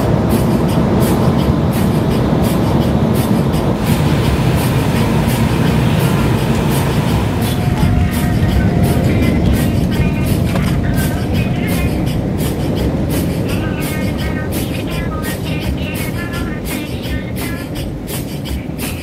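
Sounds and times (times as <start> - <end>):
jet engine and airflow rumble: 0.0 - 19.0.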